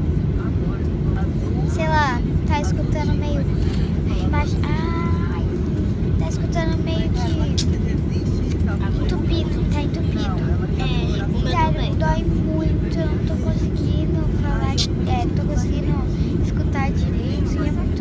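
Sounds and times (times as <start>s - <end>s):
airplane cabin rumble: 0.0s - 18.0s
girls talking: 1.7s - 7.7s, 9.0s - 18.0s.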